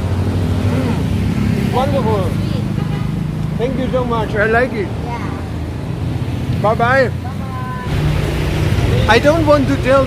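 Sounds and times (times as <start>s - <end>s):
motorbike and car engines passing: 0.0s - 10.0s.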